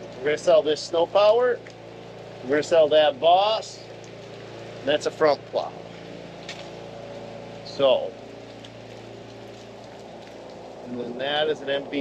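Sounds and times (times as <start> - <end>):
machine humming: 0.0 - 12.0.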